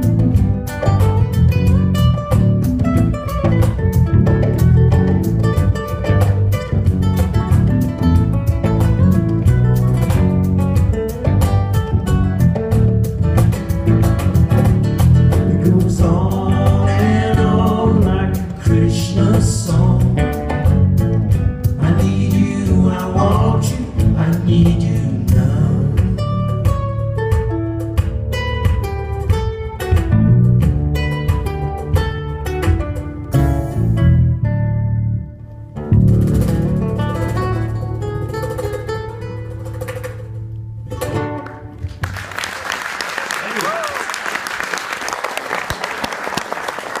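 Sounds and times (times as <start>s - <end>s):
acoustic guitar playing: 0.0s - 42.6s
audience applause: 41.8s - 47.0s.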